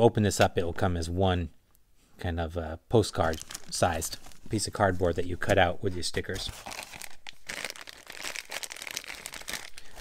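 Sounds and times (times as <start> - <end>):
plastic bag crinkling: 3.2 - 5.4, 6.3 - 10.0.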